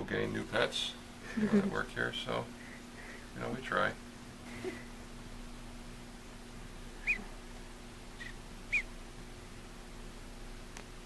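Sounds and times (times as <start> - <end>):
duckling peeping: 7.0 - 7.4, 8.1 - 9.0.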